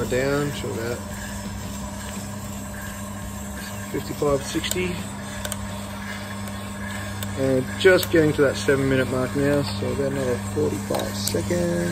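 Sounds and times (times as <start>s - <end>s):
coffee roaster humming: 0.0s - 11.9s.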